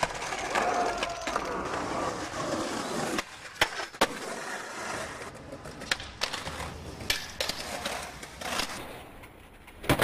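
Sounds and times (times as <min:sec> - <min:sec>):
skateboard clacks: 0:00.0 - 0:10.0
skateboard cracks: 0:00.0 - 0:10.0
skateboard wheels rolling on concrete: 0:00.0 - 0:10.0.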